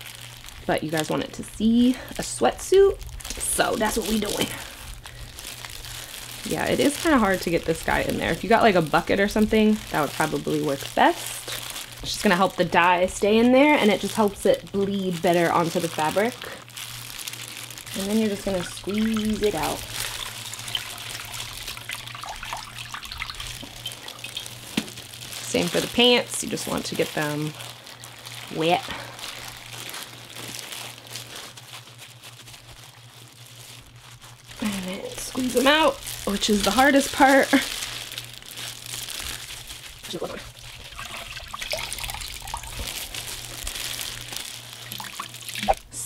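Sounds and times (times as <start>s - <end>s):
wet fabric and plastic crinkling: 0.0s - 46.0s
small splashes: 17.9s - 25.9s, 40.6s - 45.9s
water dripping into metal bowl: 20.1s - 24.6s.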